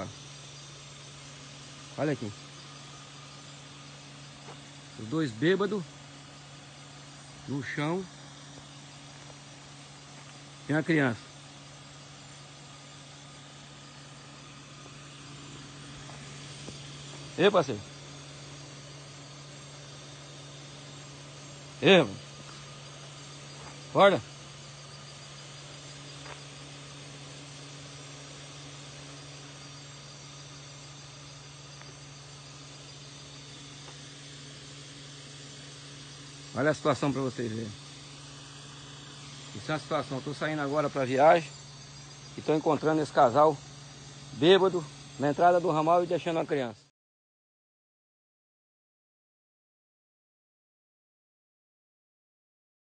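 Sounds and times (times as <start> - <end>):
insects chirping: 0.0 - 46.8
continuous low hum: 0.0 - 46.9.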